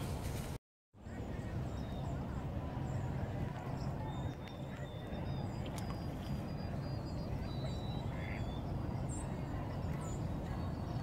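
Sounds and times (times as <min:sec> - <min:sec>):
waterfowl call: 0:07.7 - 0:08.6.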